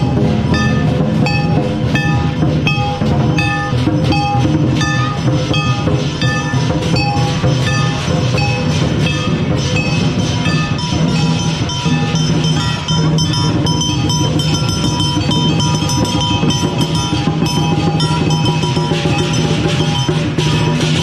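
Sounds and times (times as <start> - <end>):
cymbals clashing: 0.0 - 21.0
drum beating: 0.0 - 21.0
gong: 0.0 - 21.0.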